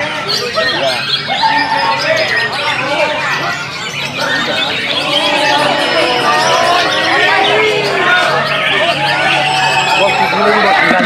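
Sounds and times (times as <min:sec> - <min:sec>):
birds singing: 0:00.0 - 0:11.0
people's voices: 0:00.0 - 0:11.0.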